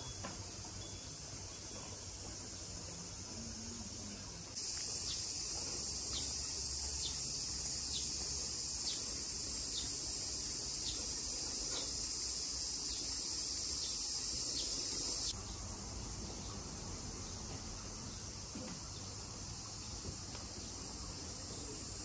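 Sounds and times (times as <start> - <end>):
cicadas buzzing: 0.0 - 22.0.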